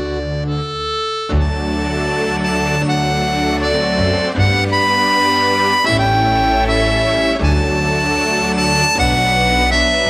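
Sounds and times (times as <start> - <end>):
button accordion playing slow lament: 0.0 - 10.0.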